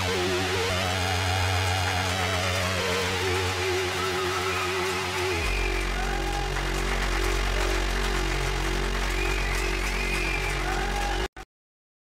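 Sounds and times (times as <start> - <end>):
low synth bass drone: 0.0 - 11.3.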